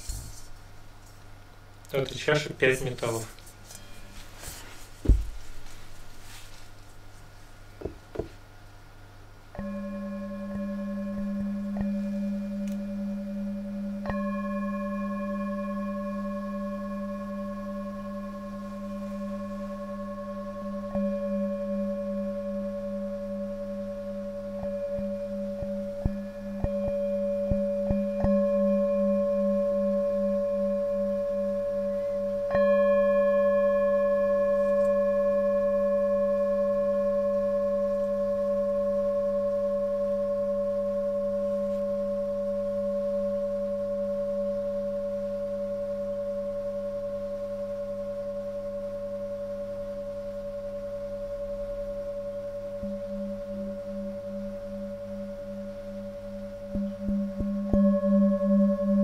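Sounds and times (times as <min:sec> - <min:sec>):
singing bowl ringing: 0:09.4 - 0:59.0
singing bowl struck: 0:09.5 - 0:59.0.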